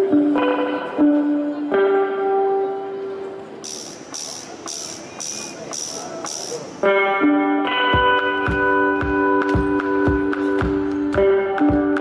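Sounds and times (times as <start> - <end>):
electric guitar chord: 6.8 - 12.0.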